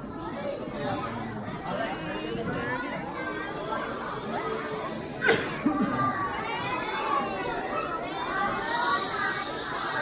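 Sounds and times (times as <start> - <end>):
children chattering: 0.0 - 10.0.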